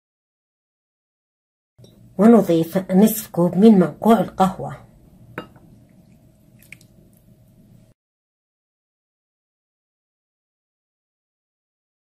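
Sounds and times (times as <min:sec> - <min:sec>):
coffee pouring into glass bowl: 0:05.4 - 0:07.2.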